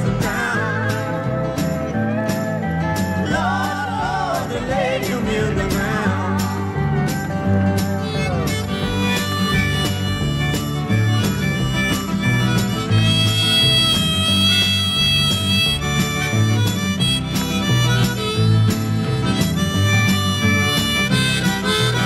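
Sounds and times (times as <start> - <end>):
bass guitar: 0.0 - 22.0
drums: 0.0 - 22.0
rhythm guitar: 0.0 - 22.0
harmonica melody: 6.2 - 22.0.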